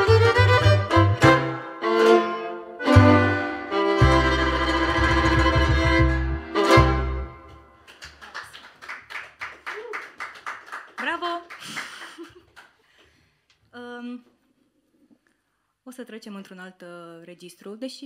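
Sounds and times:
acoustic folk band playing: 0.0s - 7.7s
people clapping: 7.5s - 13.2s.

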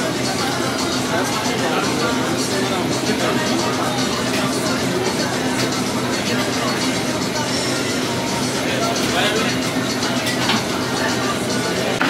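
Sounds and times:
background music: 0.0s - 12.0s
indistinct chatter: 0.0s - 12.0s.

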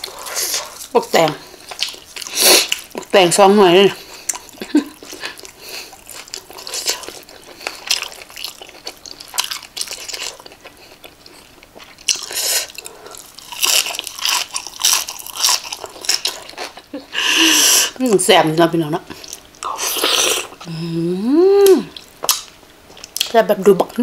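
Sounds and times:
chewing and crunching food: 0.0s - 17.0s, 19.1s - 20.7s, 21.9s - 23.4s.

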